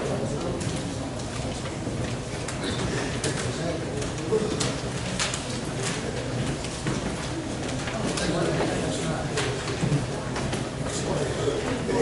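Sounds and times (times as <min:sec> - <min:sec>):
low indistinct talking: 0:00.0 - 0:12.0.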